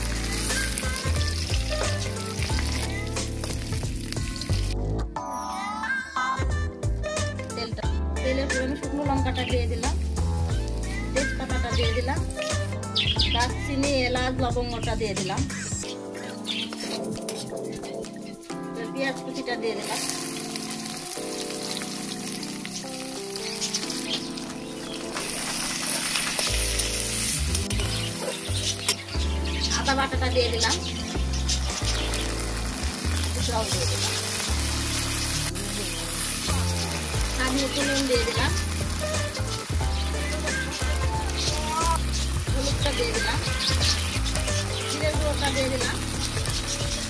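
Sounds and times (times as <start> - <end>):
oil sizzling in a pan: 0.0 - 4.8, 8.8 - 13.6, 19.4 - 47.0
background music: 0.0 - 47.0.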